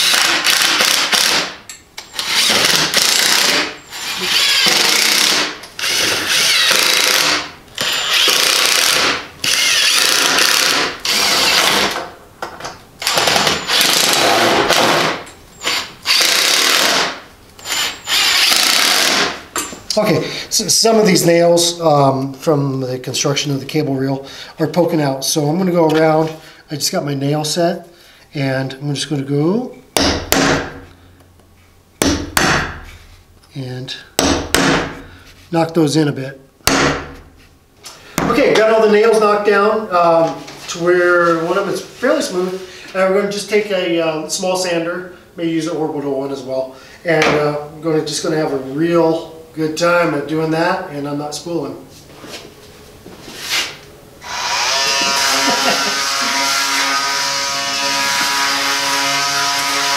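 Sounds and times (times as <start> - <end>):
cordless driver driving screws: 15.6 - 19.2
hammer striking a nail: 30.0 - 30.8, 32.0 - 32.8, 34.2 - 35.0, 36.7 - 37.2.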